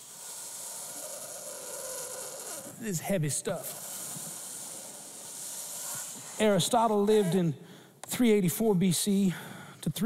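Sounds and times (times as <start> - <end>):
steady high hiss: 0.0 - 7.4.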